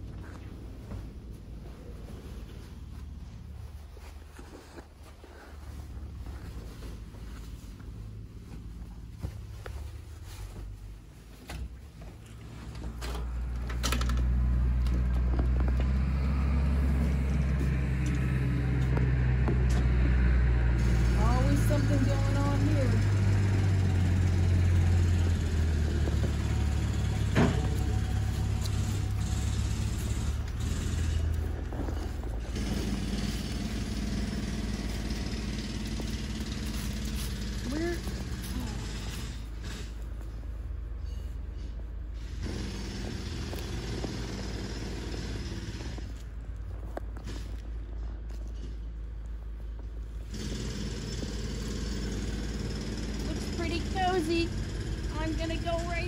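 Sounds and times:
vehicle engine humming: 0:00.0 - 0:56.0.

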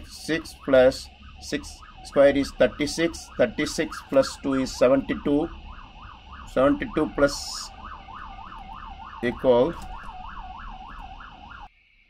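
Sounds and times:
siren yelping: 0:00.0 - 0:11.7.

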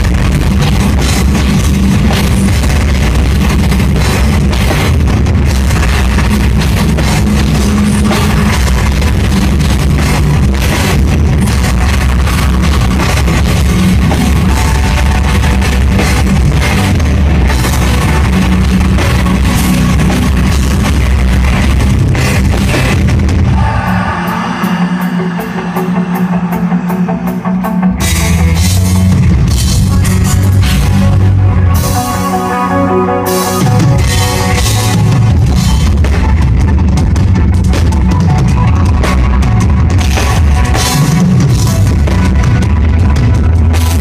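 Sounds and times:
guitar line: 0:00.0 - 0:44.0
metal band playing live: 0:00.0 - 0:44.0.

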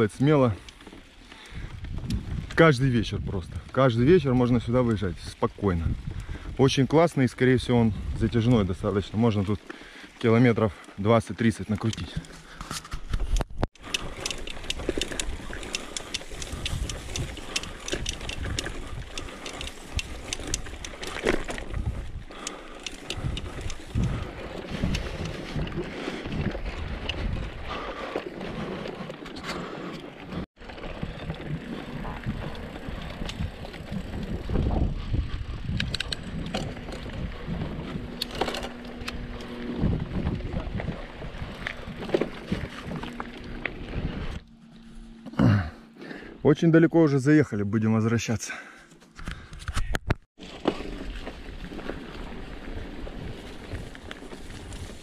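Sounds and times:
bike rattling: 0:00.0 - 0:46.3, 0:50.4 - 0:55.0
wind on microphone: 0:01.6 - 0:04.4, 0:05.5 - 0:06.9, 0:07.5 - 0:08.9, 0:12.9 - 0:27.9, 0:31.1 - 0:44.5
tyres crunching on dirt: 0:06.7 - 0:45.7, 0:50.4 - 0:55.0
steady low hum: 0:36.1 - 0:46.4.

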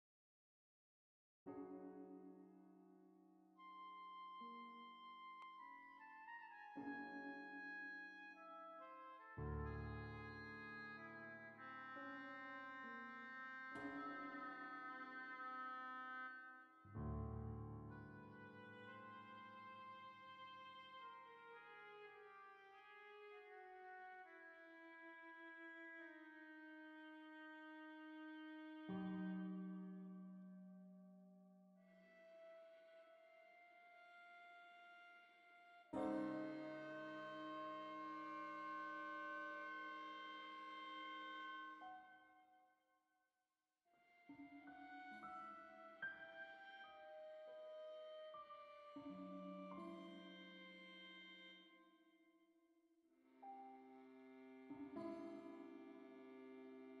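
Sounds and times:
flute: 0:03.5 - 0:30.2, 0:31.8 - 0:42.5, 0:44.0 - 0:52.0
oboe: 0:03.5 - 0:30.4, 0:31.8 - 0:42.5, 0:44.0 - 0:52.0
viola: 0:03.6 - 0:30.8, 0:31.8 - 0:42.5, 0:44.0 - 0:52.0, 0:53.3 - 0:57.0.

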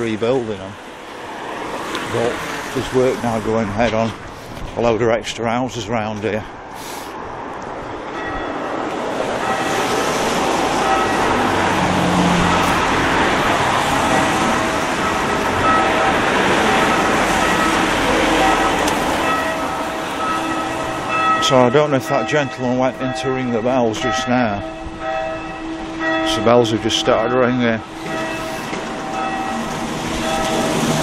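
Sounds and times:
church bells ringing: 0:08.1 - 0:31.0.

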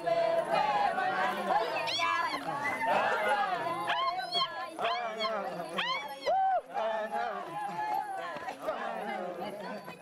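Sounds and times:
women calling out and singing: 0:01.4 - 0:06.7.

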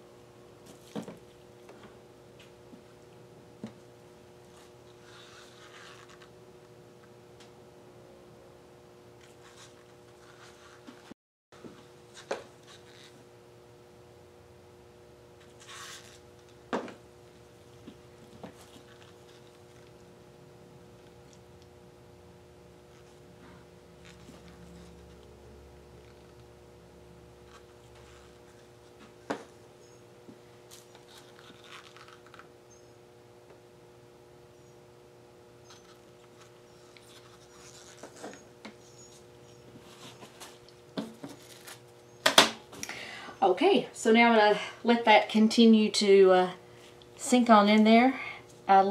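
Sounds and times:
faint steady hum: 0:00.0 - 0:48.9.

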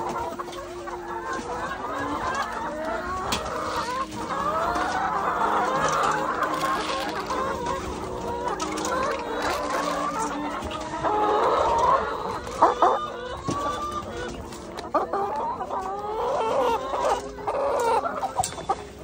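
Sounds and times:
hens clucking: 0:00.0 - 0:19.0.

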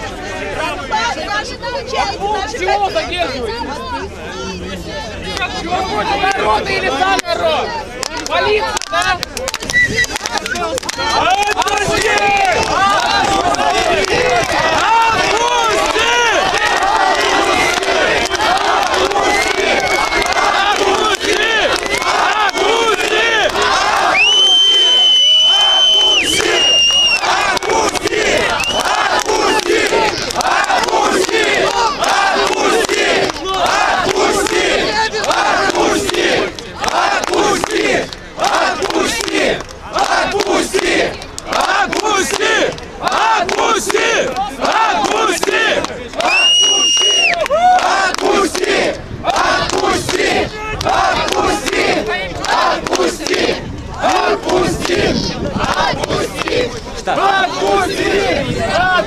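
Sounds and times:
crowd shouting: 0:00.0 - 0:59.0
shrill whistle: 0:09.6 - 0:10.6, 0:24.1 - 0:27.2, 0:28.6 - 0:28.9, 0:46.3 - 0:47.4.

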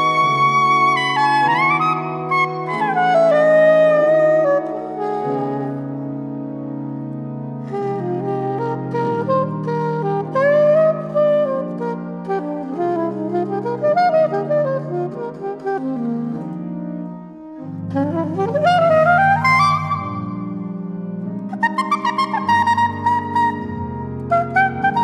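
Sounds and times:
improvised saxophone line: 0:00.0 - 0:25.0.

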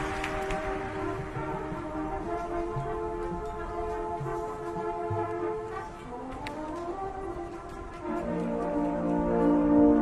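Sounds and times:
brass playing soft chords: 0:00.0 - 0:10.0.

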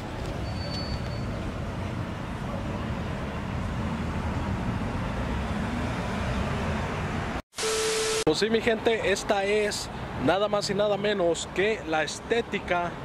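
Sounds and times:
street traffic rumble: 0:00.0 - 0:07.4, 0:08.3 - 0:13.0.

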